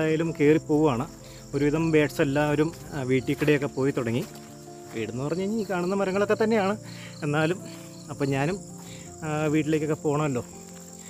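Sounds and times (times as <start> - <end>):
man talking: 0.0 - 4.3, 4.9 - 8.6, 9.2 - 10.4
high-pitched insect drone: 0.0 - 11.0.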